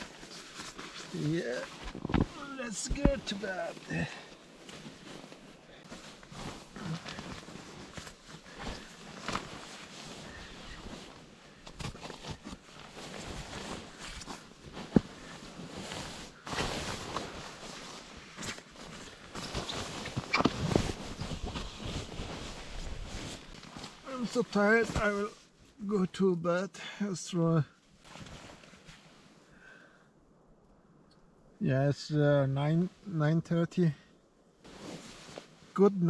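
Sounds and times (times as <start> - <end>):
sleeping bag rustling: 0.0 - 25.8, 27.9 - 29.5, 34.6 - 35.8.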